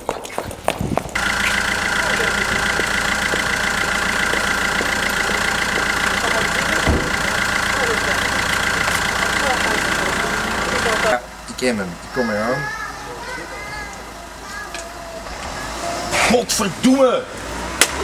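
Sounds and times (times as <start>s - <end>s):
engine idling: 1.2s - 15.8s
faint voices: 1.7s - 3.5s, 5.4s - 16.5s.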